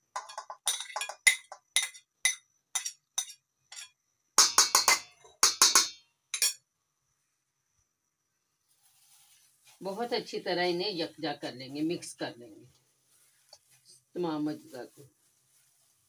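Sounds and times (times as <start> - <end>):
spoon clattering in steel bowl: 0.0 - 6.6
spoon clinking glass bowl: 0.1 - 6.6.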